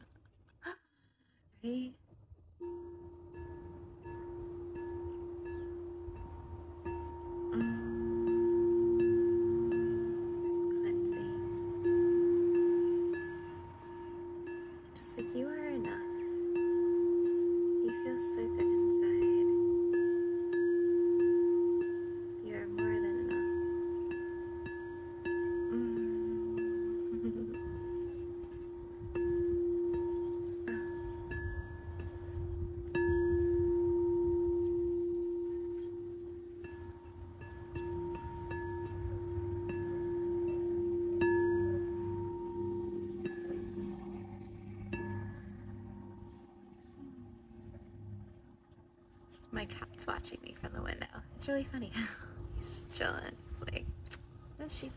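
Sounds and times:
singing bowl ringing: 2.6s - 51.0s.

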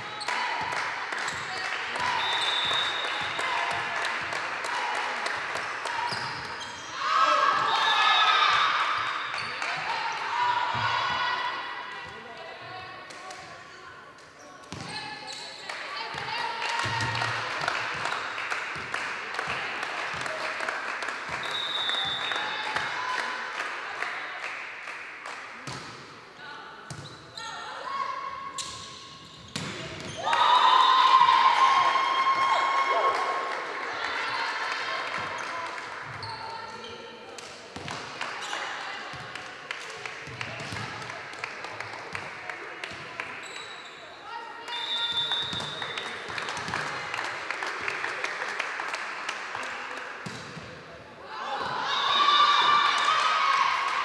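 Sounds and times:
players and spectators voices: 0.0s - 54.0s
ball bouncing on hall floor: 14.6s - 15.4s, 28.6s - 30.2s, 50.2s - 50.8s.

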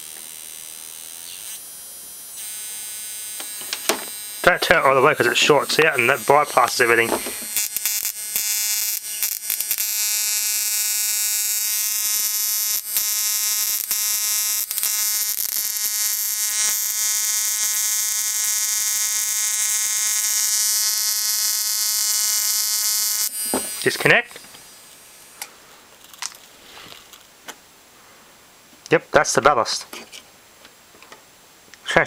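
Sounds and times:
high-pitched electrical buzz: 0.0s - 27.3s
faint electric snaps: 2.3s - 27.6s.

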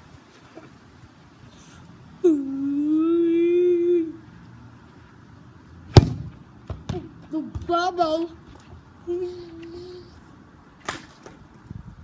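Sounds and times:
pole smacking a football: 5.9s - 7.7s.

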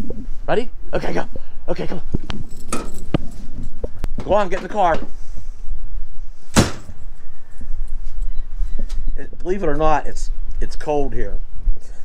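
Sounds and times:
steady low rumble: 0.0s - 12.0s
door slamming shut: 6.5s - 7.0s.

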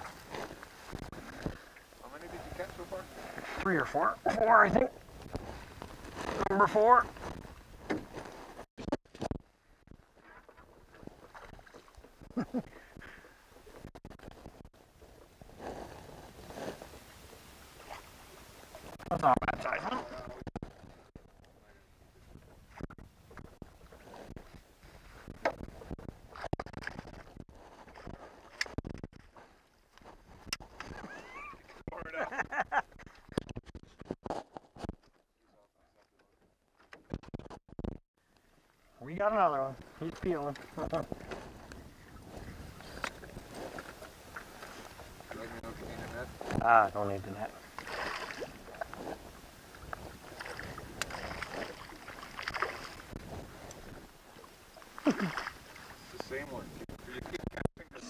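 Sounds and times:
fish splashing at the surface: 47.8s - 48.8s, 50.4s - 53.1s.

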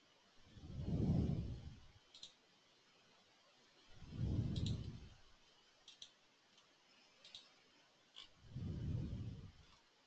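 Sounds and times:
low muffled rumble: 0.5s - 1.9s, 3.9s - 5.2s, 8.4s - 9.8s.

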